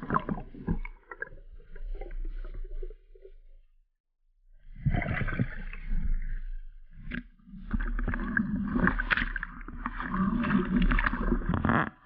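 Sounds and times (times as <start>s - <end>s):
muffled underwater churning: 0.0s - 3.4s, 4.6s - 12.0s.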